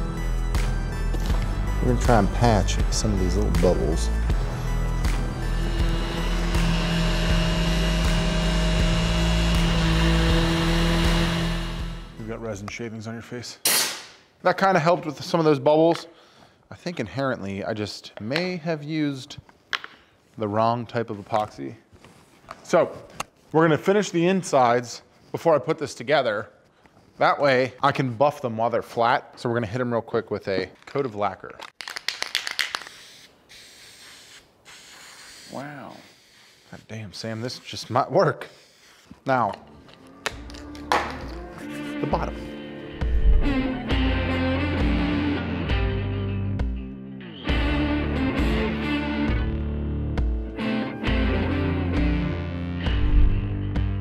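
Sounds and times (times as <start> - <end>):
orbital sander running: 3.6 - 12.2
spray hissing: 32.8 - 36.9.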